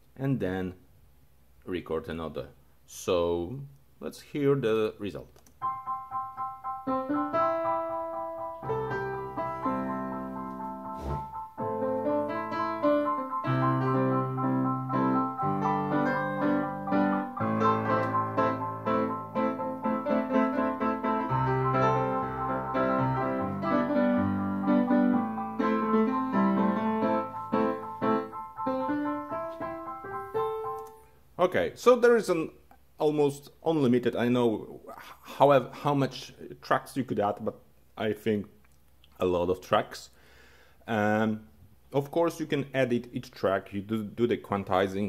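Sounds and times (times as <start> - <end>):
digital piano playing chords and melody: 5.6 - 31.2.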